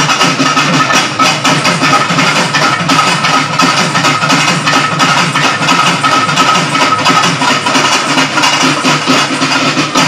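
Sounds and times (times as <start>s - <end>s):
barrel drum and hand drums beating: 0.0s - 10.0s.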